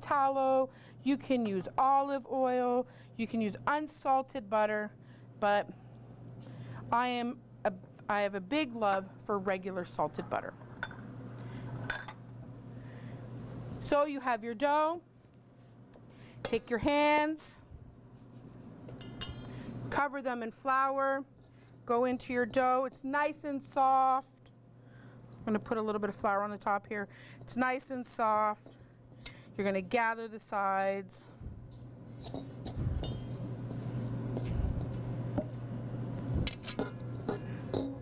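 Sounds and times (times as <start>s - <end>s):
steady low hum: 0.0s - 14.0s, 21.2s - 38.0s
hands rustling flour in metal bowl: 31.7s - 35.6s.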